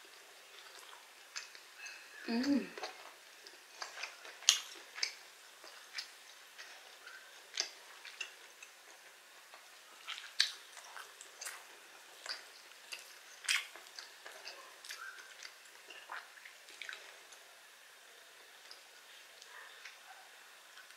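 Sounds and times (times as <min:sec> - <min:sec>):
chewing: 0:00.1 - 0:17.5.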